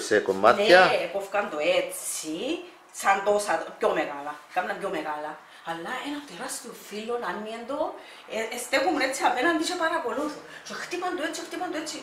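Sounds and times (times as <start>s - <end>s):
woman talking: 0.6s - 12.0s.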